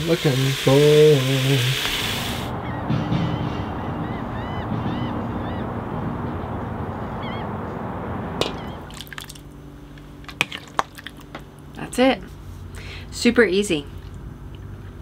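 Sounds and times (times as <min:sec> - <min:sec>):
steady indoor hum: 0:00.0 - 0:15.0
wind: 0:02.4 - 0:15.0
bird chirping: 0:08.5 - 0:08.9.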